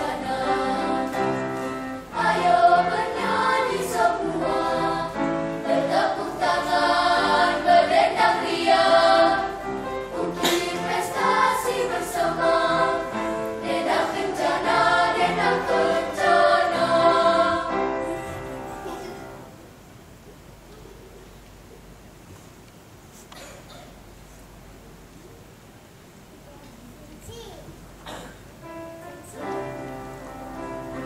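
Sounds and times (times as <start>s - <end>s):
children's choir singing: 0.0s - 19.5s.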